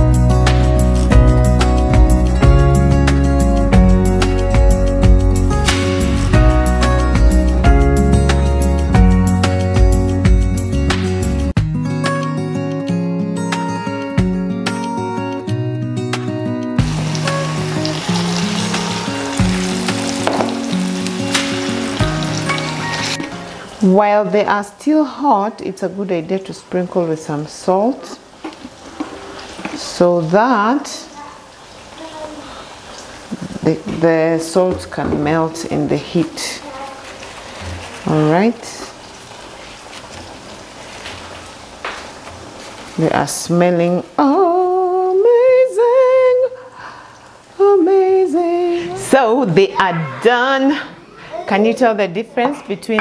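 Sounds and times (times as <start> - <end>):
background music: 0.0 - 24.0
slices deep-frying in hot oil: 16.8 - 23.9, 26.1 - 35.0, 35.6 - 44.2.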